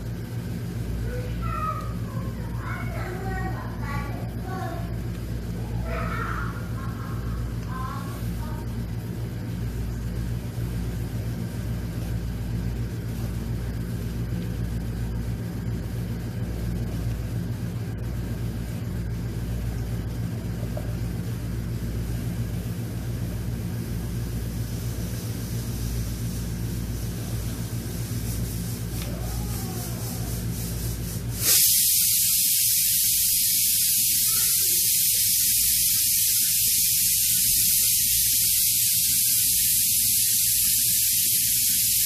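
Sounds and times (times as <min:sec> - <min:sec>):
low motor hum: 0:00.0 - 0:31.3.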